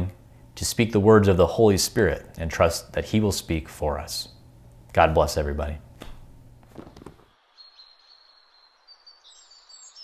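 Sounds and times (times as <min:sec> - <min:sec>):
faint room hiss: 0:00.0 - 0:10.0
songbird chirps and trills: 0:07.3 - 0:10.0.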